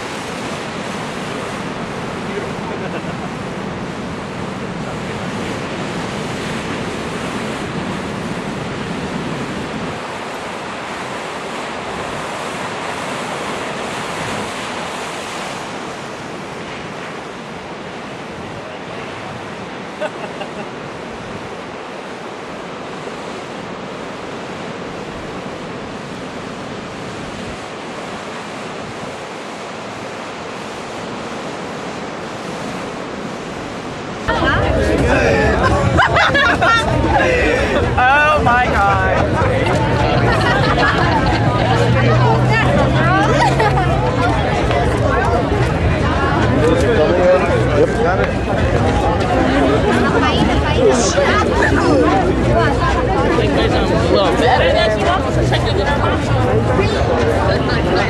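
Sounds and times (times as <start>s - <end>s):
ocean surf breaking on rocks: 0.0s - 58.0s.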